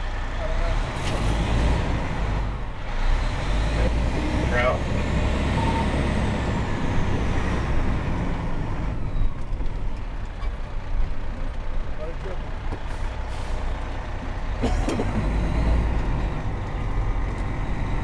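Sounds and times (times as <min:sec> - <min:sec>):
diesel engine drone: 0:00.0 - 0:18.0
road rumble: 0:00.0 - 0:18.0.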